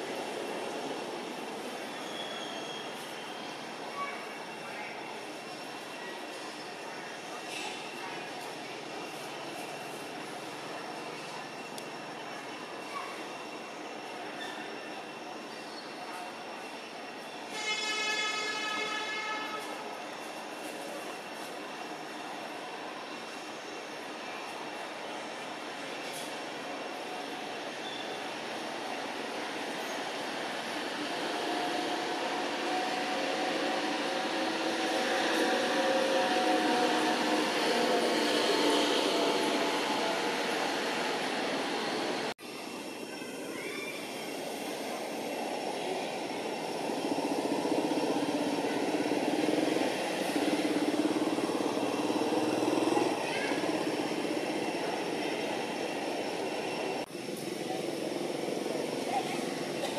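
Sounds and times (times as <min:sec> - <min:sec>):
vehicle horn: 0:17.5 - 0:19.8.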